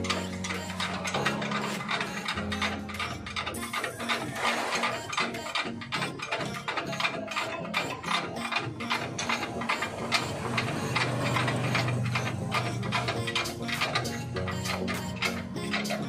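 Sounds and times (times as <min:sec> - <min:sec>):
ratchet wrench clicking: 0:00.0 - 0:16.0.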